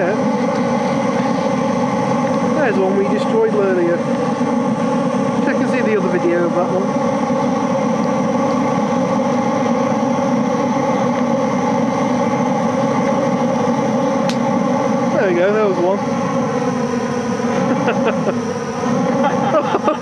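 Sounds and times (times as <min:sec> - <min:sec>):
oil burner firing: 0:00.0 - 0:20.0
person laughing: 0:17.6 - 0:20.0.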